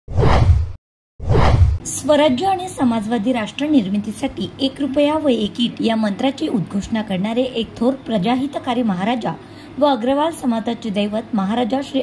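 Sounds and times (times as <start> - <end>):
whoosh sound effects: 0.1 - 1.8.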